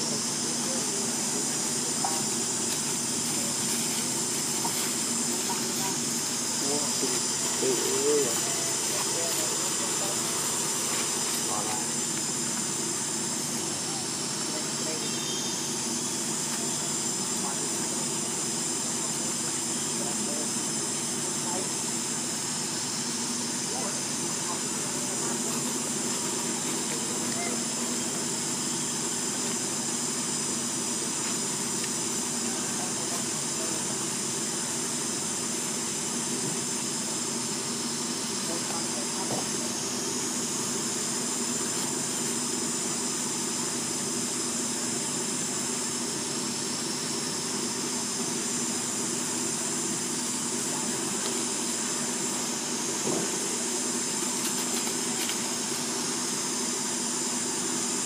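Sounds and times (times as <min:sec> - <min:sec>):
low steady murmur: 0:00.0 - 0:56.9
high-pitched insect drone: 0:00.0 - 0:58.0
faint wavering call: 0:07.3 - 0:09.0, 0:27.2 - 0:28.1.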